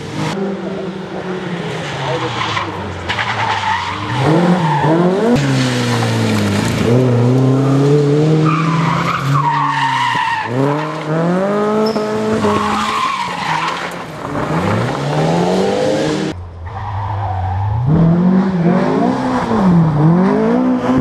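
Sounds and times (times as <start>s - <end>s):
rally car engine revving: 0.0s - 21.0s
tyres sliding on gravel: 4.7s - 15.4s.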